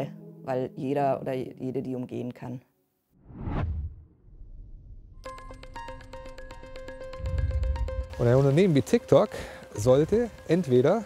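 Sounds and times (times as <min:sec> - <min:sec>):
whoosh with low rumble: 0:03.2 - 0:05.2, 0:07.2 - 0:08.1.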